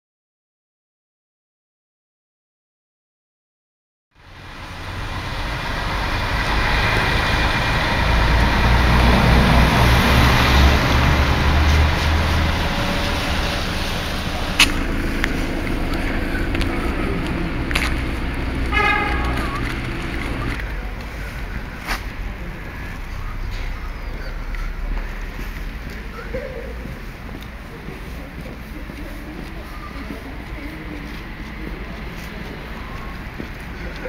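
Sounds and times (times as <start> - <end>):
street noise: 4.2 - 34.0
vehicle engine rumble passing: 4.2 - 34.0.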